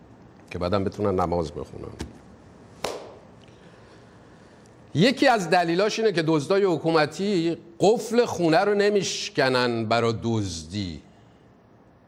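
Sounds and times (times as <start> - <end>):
sharp knock: 2.8 - 3.2.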